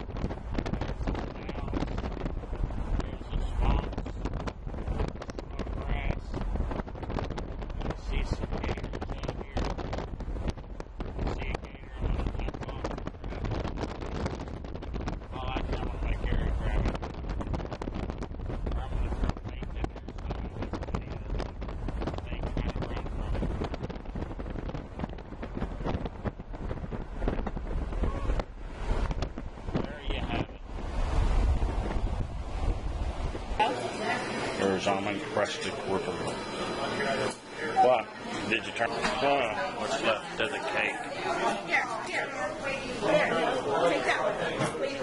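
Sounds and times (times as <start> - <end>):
wind buffeting microphone: 0.0 - 37.6
low rumble: 0.0 - 43.0
faint voices: 0.1 - 10.0, 11.0 - 17.7, 18.6 - 26.2, 26.8 - 28.5, 29.7 - 32.1, 33.1 - 45.0.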